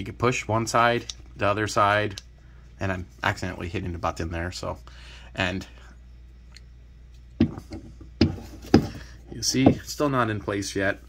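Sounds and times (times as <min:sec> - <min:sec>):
knocks and rubs on rubber plug: 0:07.4 - 0:09.9.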